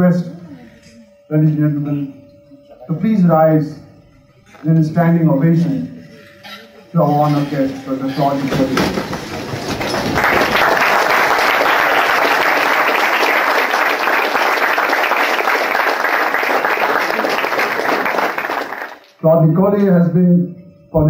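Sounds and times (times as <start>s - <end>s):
audience applauding: 7.1s - 19.2s.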